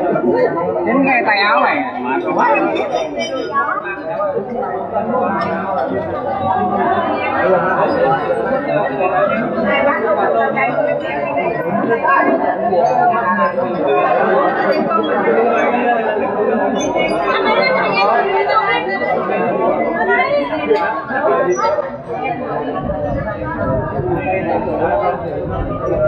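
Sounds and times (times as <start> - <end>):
group of people chattering: 0.0 - 26.0.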